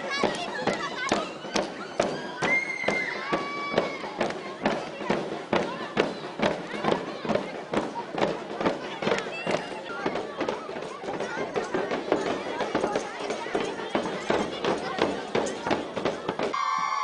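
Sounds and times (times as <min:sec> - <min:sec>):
girls shouting and cheering: 0:00.0 - 0:05.8, 0:16.4 - 0:17.0
hand drums beating: 0:00.0 - 0:16.6.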